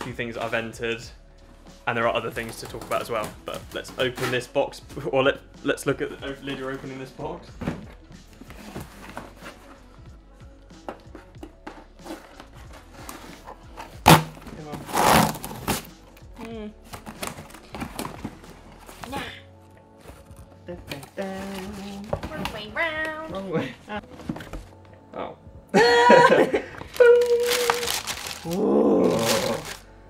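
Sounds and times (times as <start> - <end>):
background music: 0.0 - 30.0
packing tape tearing: 14.1 - 15.9, 26.9 - 29.8.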